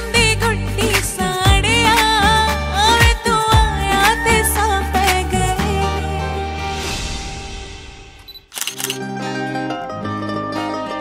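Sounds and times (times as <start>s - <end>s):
background song music: 0.0s - 8.2s
camera shutter clicks: 8.2s - 9.0s.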